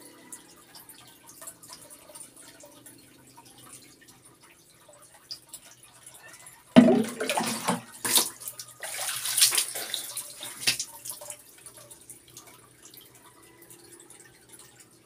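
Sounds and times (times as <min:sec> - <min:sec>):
water splashing and pouring: 0:01.0 - 0:15.0.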